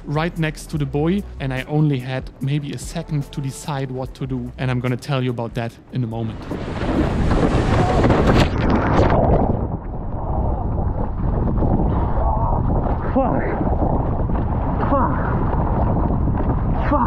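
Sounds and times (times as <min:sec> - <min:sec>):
muffled water sloshing and gurgling: 0:06.2 - 0:17.0
water splashing: 0:06.2 - 0:17.0
wind rushing: 0:06.2 - 0:17.0.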